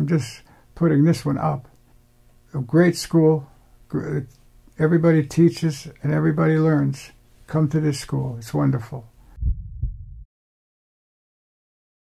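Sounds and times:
dull low thumps: 9.3s - 10.3s
low rumble: 9.3s - 10.3s.

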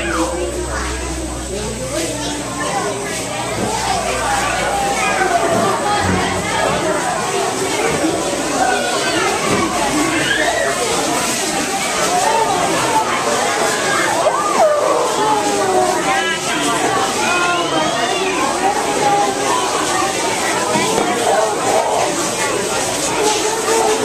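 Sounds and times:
people talking over one another: 0.0s - 24.0s.

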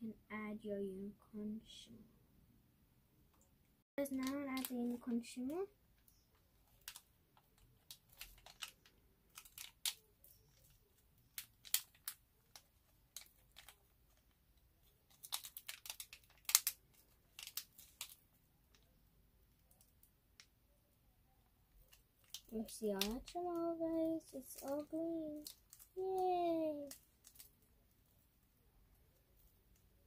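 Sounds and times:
foil sachet crinkling and tearing: 4.0s - 18.8s, 21.7s - 28.2s.

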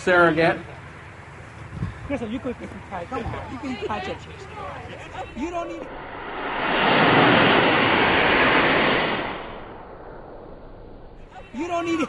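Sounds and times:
rocket motor rushing hiss: 5.9s - 10.9s.

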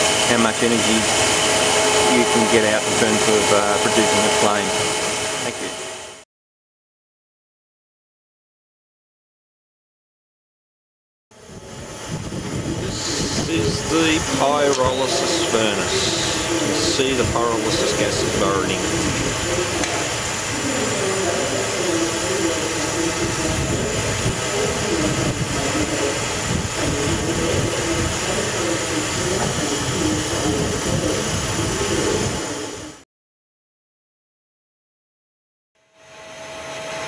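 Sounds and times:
furnace combustion roar: 0.0s - 6.2s, 11.4s - 33.0s, 35.8s - 37.0s
running plant machinery: 0.0s - 6.2s, 11.4s - 33.0s, 35.9s - 37.0s.

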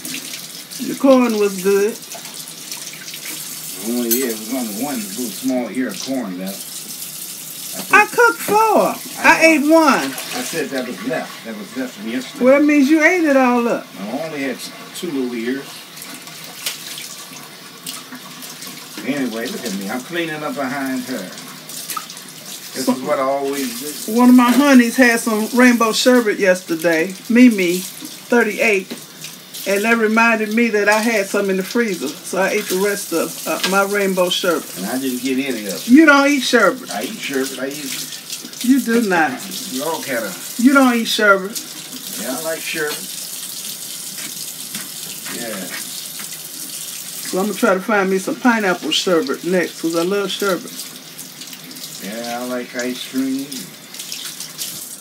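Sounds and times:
dishes being rinsed: 0.0s - 55.0s
faucet running into sink: 0.0s - 55.0s
tap running into sink: 27.9s - 29.1s, 33.4s - 34.0s.

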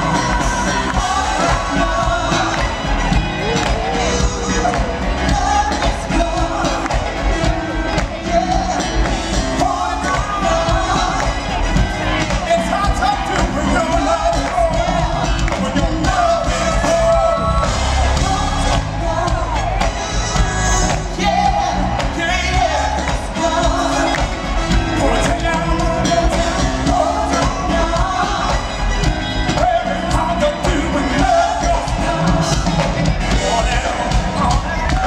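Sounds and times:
live band playing: 0.0s - 35.0s
man singing into microphone: 0.0s - 35.0s.

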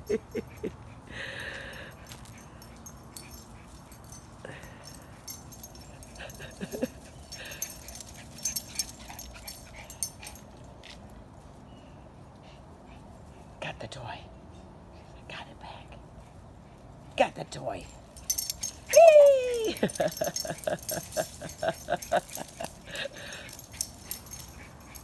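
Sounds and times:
breathy dog sounds: 0.2s - 11.0s, 20.0s - 25.0s
dog whining: 18.6s - 21.0s.

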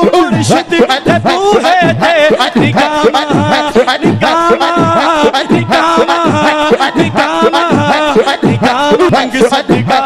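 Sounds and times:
man singing devotional song: 0.0s - 10.0s
rhythmic chanted vocal syllables: 0.0s - 10.0s.

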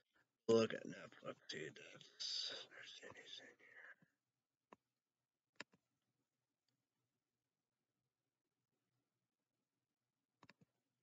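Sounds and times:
man whispering: 0.5s - 4.1s.

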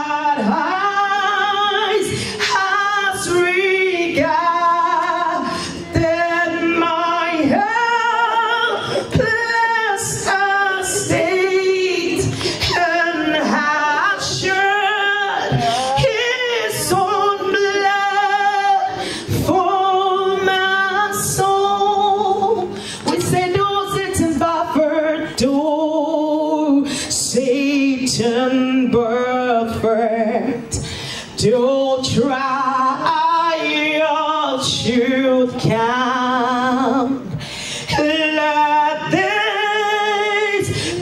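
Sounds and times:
woman singing into a microphone: 0.0s - 41.0s.

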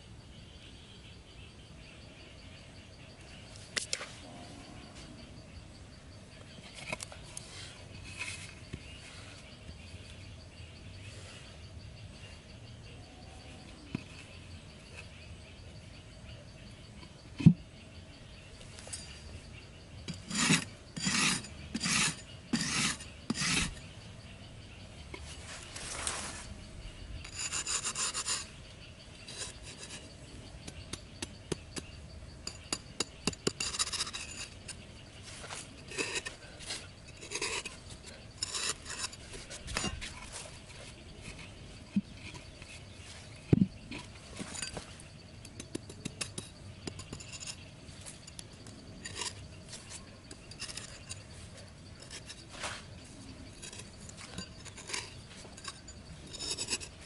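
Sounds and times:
blade scraping soil: 6.7s - 9.4s, 20.1s - 23.9s, 27.2s - 28.6s, 29.2s - 57.0s.

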